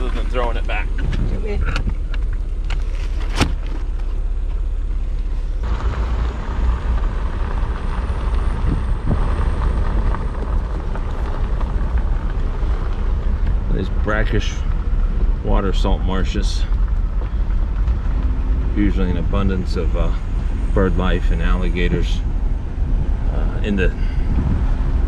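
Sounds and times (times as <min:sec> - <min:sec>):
car engine running: 0:00.0 - 0:25.0
wind rumbling on microphone: 0:00.8 - 0:02.7, 0:05.6 - 0:25.0.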